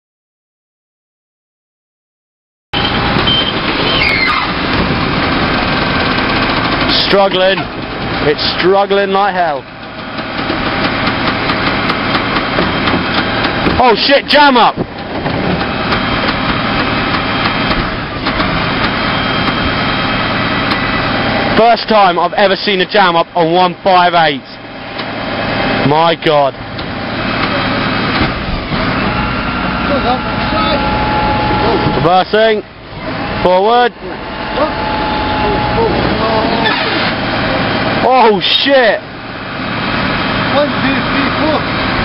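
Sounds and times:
truck engine and hydraulic packer: 2.8 - 42.0
mechanical whine: 26.7 - 38.3.

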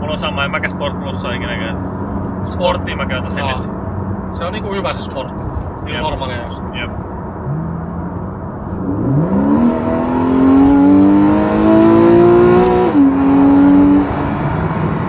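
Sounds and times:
car engine accelerating: 0.0 - 15.0.

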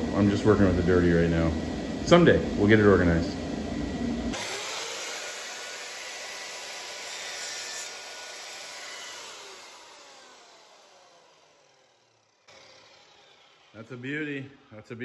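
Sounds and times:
miter saw blade spinning down: 4.3 - 15.0.

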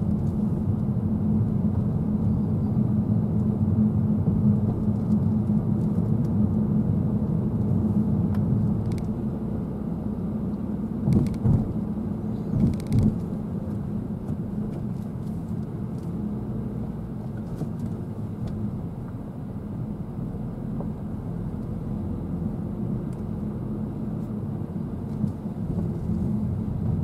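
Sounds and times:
car cabin road noise: 0.0 - 27.0.

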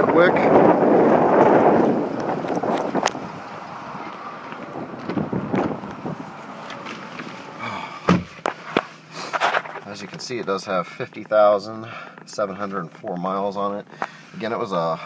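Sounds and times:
wind buffeting microphone: 0.0 - 6.9
car door shutting thump: 8.0 - 8.5.

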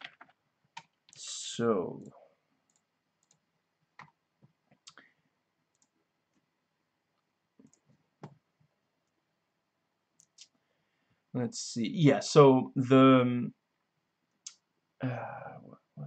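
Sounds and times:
computer mouse clicks: 2.7 - 3.4, 5.7 - 6.4, 7.6 - 8.4.

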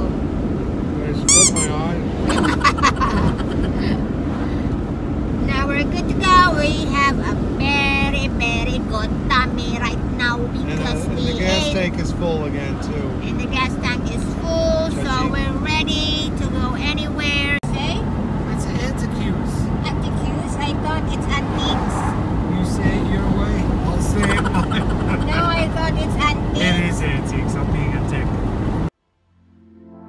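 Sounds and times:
car engine and road noise: 0.0 - 29.8
voices talking: 0.9 - 4.1, 5.4 - 28.4.

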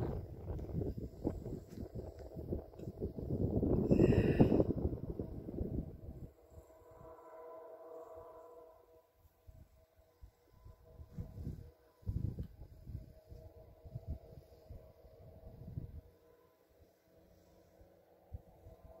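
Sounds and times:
wind buffeting microphone: 0.0 - 6.6, 10.8 - 16.1
faint steady hum: 0.0 - 19.0.

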